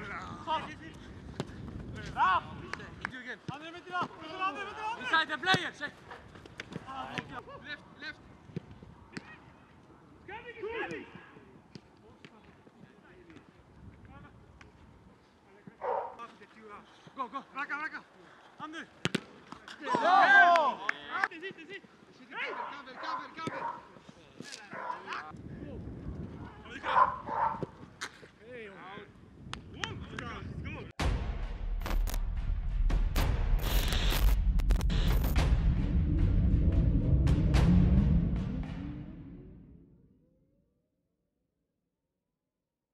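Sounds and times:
people shouting short calls: 0:19.8 - 0:21.3.

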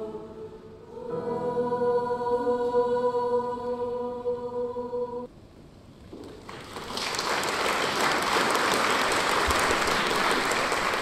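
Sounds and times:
audience applauding: 0:06.3 - 0:11.0.

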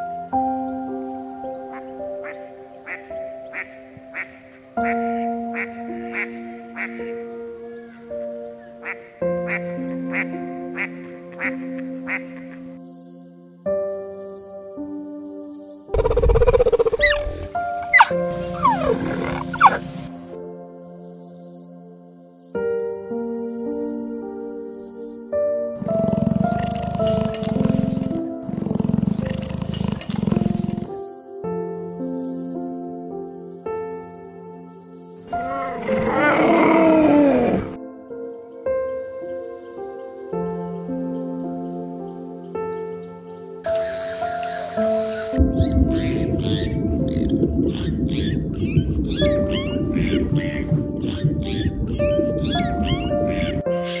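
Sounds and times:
music with sustained chords: 0:00.0 - 0:54.0
leopard rasping grunts: 0:17.9 - 0:19.8, 0:25.8 - 0:30.9.

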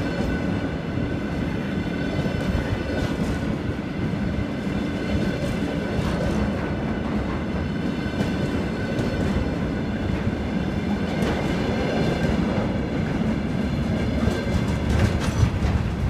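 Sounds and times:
freight train rumbling past: 0:00.0 - 0:16.0
wheels clicking over rail joints: 0:11.1 - 0:16.0.

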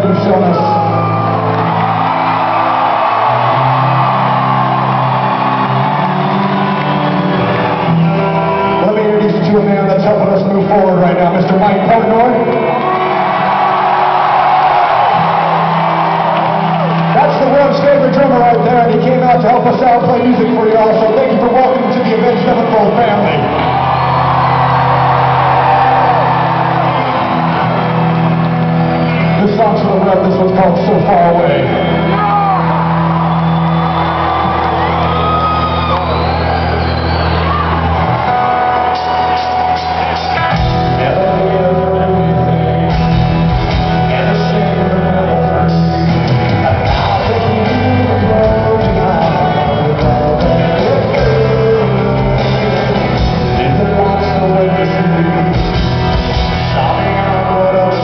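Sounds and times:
crowd shouting and cheering: 0:00.0 - 0:58.0
sustained rock guitar chords: 0:21.8 - 0:58.0.

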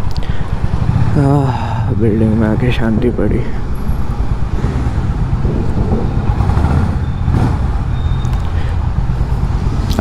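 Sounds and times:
motorcycle engine running: 0:03.7 - 0:08.2.

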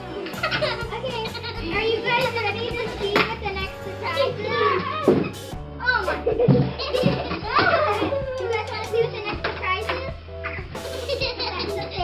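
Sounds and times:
background music: 0:00.0 - 0:12.0
children's voices: 0:00.2 - 0:12.0.

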